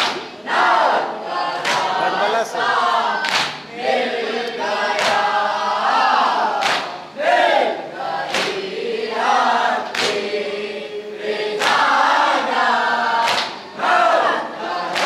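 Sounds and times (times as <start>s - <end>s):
men chanting through a microphone: 0.0s - 15.0s.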